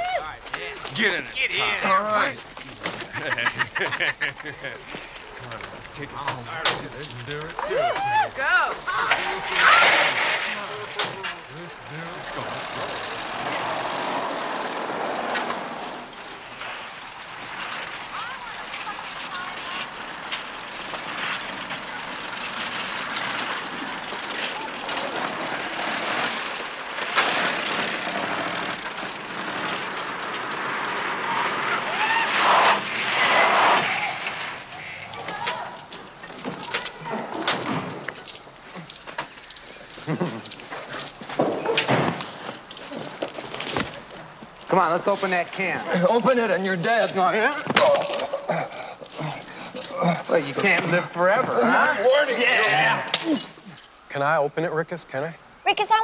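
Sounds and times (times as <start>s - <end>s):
people laughing: 2.7s - 5.6s, 40.0s - 40.9s
car engine driving off: 9.1s - 18.4s.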